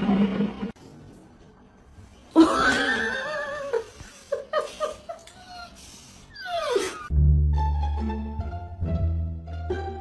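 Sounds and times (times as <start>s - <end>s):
dog whining: 6.3s - 7.1s.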